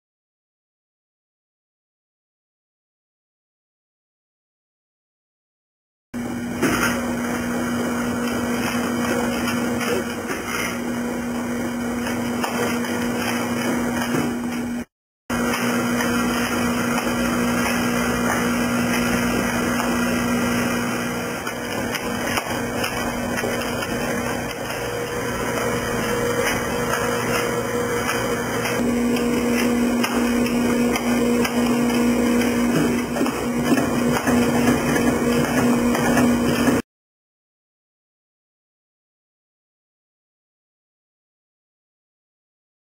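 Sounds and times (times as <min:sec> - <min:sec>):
machine hum: 0:06.2 - 0:36.8.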